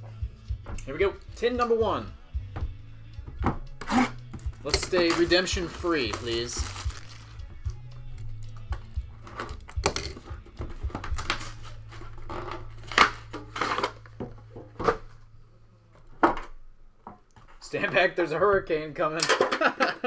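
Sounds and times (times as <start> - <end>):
background music: 0.0 - 20.0
shrink-wrap crinkling and tearing: 4.8 - 7.4.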